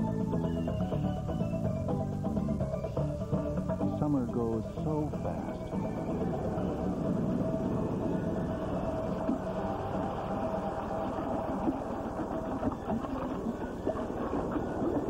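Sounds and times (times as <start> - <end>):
thin steady whine: 0.0 - 15.0.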